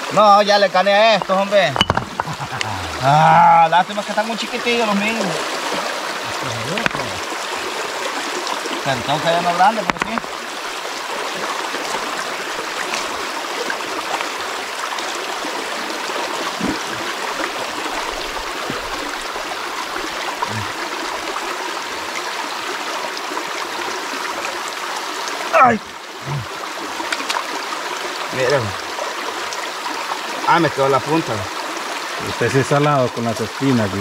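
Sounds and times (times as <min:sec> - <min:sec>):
stream babbling over stones: 0:00.0 - 0:34.0.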